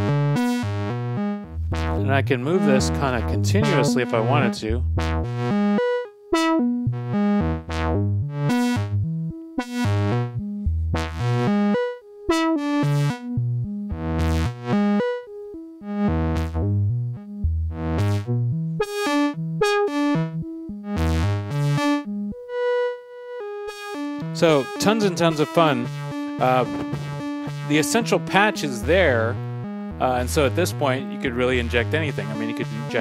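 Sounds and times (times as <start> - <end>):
synthesizer random plucked notes: 0.0 - 33.0.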